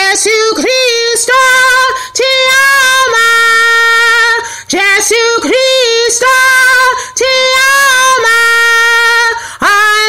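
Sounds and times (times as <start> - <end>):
woman singing unaccompanied: 0.0 - 10.0.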